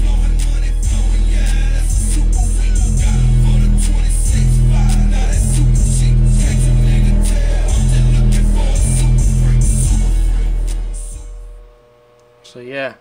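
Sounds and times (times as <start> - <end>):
deep repeating bass notes: 0.0 - 11.8
hip-hop music: 0.0 - 11.9.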